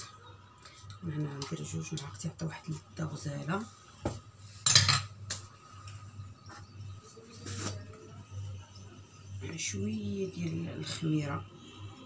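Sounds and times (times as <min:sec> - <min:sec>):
kitchen utensils clattering: 0:04.6 - 0:05.2.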